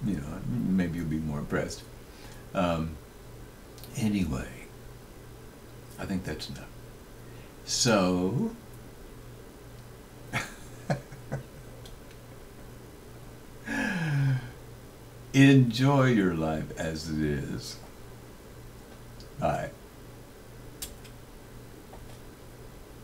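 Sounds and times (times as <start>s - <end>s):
steady low hum: 0.0s - 23.0s
man laughing: 10.3s - 11.8s, 13.7s - 14.5s.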